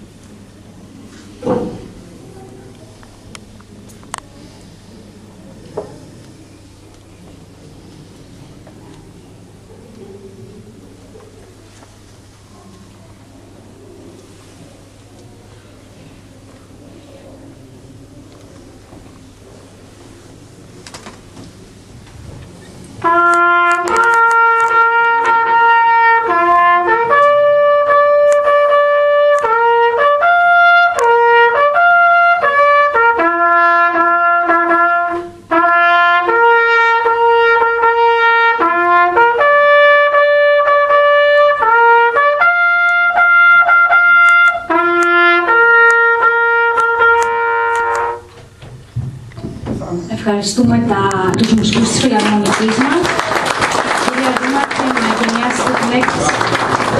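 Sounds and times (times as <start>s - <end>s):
solo bugle call: 23.0s - 48.3s.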